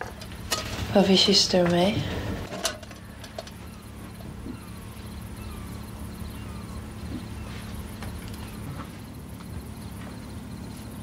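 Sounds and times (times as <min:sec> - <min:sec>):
crickets chirping: 0:00.0 - 0:11.0
low steady hum: 0:00.0 - 0:11.0.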